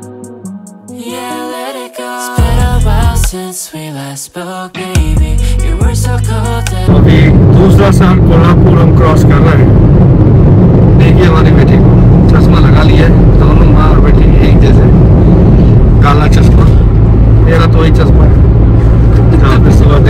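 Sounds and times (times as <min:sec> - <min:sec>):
people talking: 0:06.7 - 0:09.8, 0:11.0 - 0:15.0, 0:16.0 - 0:18.4, 0:19.1 - 0:20.0
road and engine rumble in car: 0:06.9 - 0:20.0.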